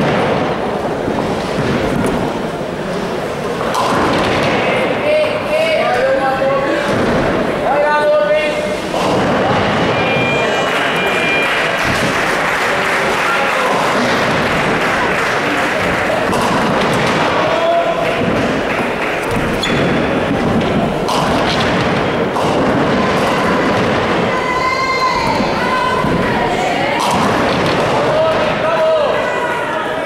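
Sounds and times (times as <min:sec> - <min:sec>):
bowling balls thudding and rolling: 0:00.0 - 0:05.0, 0:05.9 - 0:29.2
din of busy bowling hall: 0:00.0 - 0:30.0.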